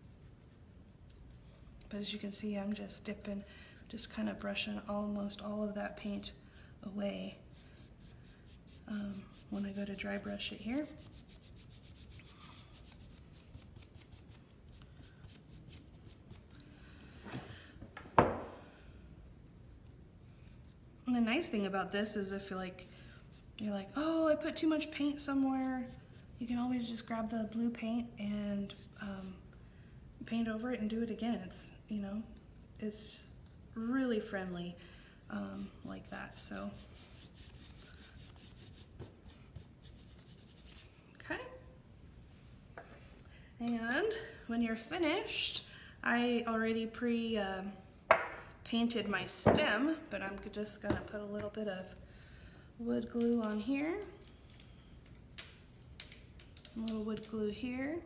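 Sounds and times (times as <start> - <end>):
paintbrush scrubbing on wood: 7.2 - 16.4, 35.3 - 40.9.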